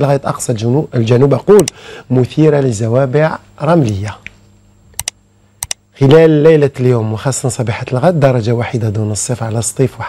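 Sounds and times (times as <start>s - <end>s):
computer mouse double clicks: 5.0s - 5.8s.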